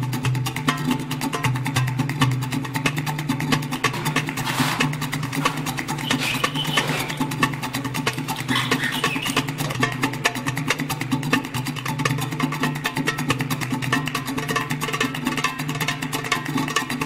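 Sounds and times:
music with fast steady beat: 0.0s - 17.0s.

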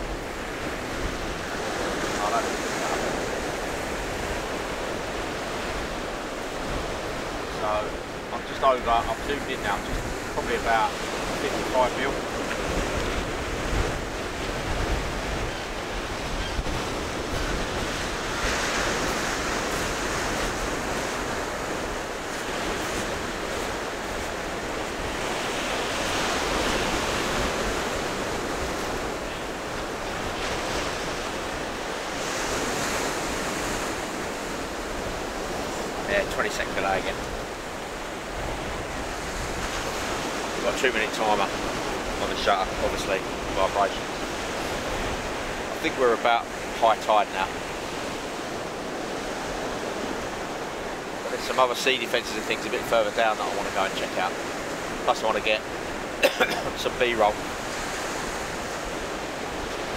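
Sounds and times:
wind rumbling on microphone: 0.0s - 51.4s
surf breaking on beach: 0.0s - 59.9s.

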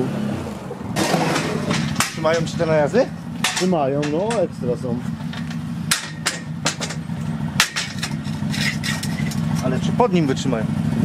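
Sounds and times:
engine idling hum: 0.0s - 11.0s
metal ramps clanking on paving: 0.9s - 10.0s.

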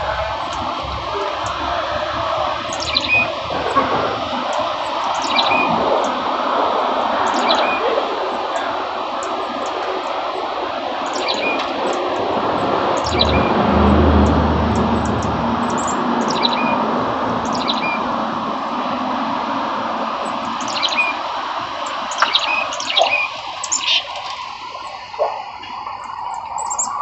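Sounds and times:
deep rumble: 12.4s - 20.0s.

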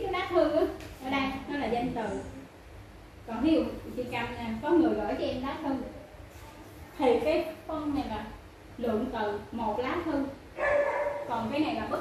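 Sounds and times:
woman speaking: 0.0s - 2.6s, 3.2s - 10.4s, 11.1s - 12.0s.

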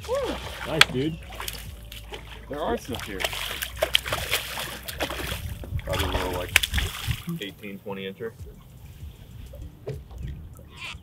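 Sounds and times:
fish splashing at surface: 0.0s - 7.4s.

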